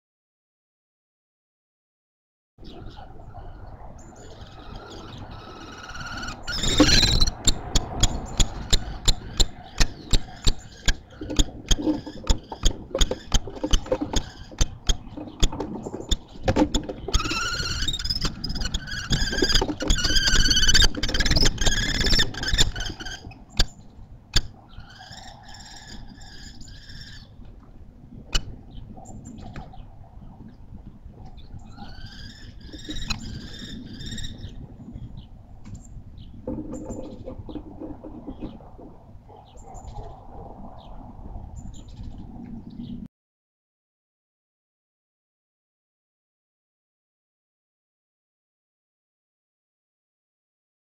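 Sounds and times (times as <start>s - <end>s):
kestrels trilling calls: 2.7s - 27.4s, 31.5s - 34.6s
birds tapping on wooden box: 6.6s - 23.7s.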